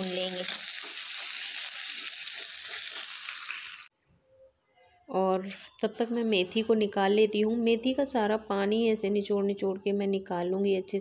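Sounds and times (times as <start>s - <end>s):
potatoes sizzling in hot oil: 0.0s - 3.9s.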